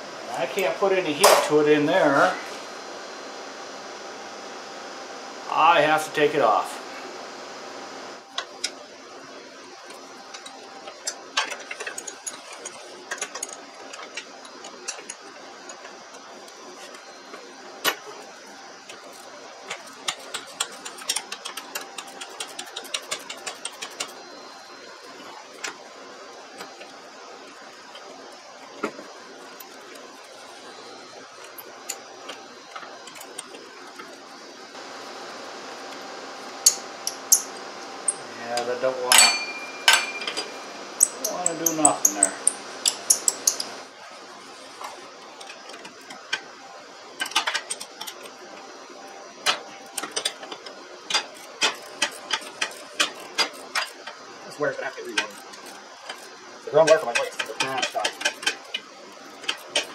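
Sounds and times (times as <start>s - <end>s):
steady background hum: 0.0s - 59.9s
metal clicks of hand tools: 39.1s - 43.8s.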